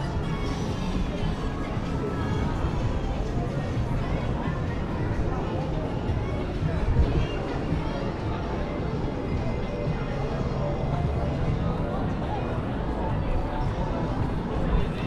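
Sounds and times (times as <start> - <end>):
music from shops: 0.0 - 15.0
people talking: 0.0 - 15.0.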